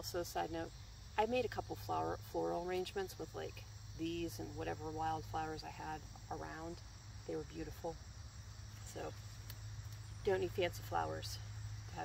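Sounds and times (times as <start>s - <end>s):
crickets chirping: 0.0s - 12.0s
low steady hum: 0.0s - 12.0s.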